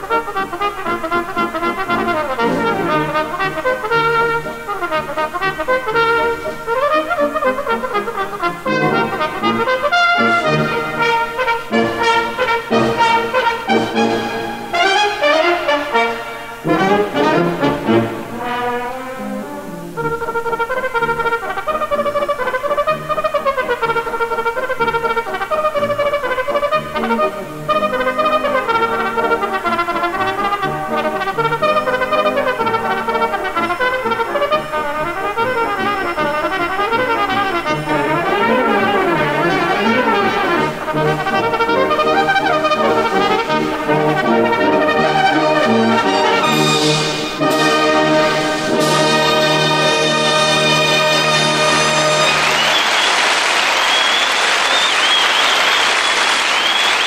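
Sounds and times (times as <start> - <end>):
brass band accompaniment: 0.0 - 57.0.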